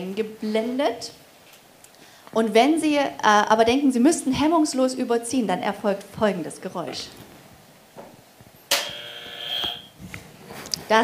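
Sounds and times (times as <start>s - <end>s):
buzzer sounding: 8.7s - 9.9s.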